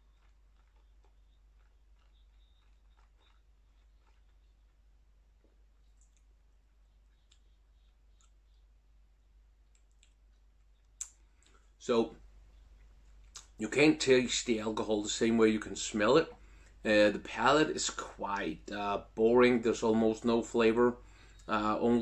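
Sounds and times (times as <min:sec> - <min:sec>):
mouth clicks: 0:09.7 - 0:11.6, 0:13.2 - 0:13.6
person speaking: 0:13.4 - 0:22.0.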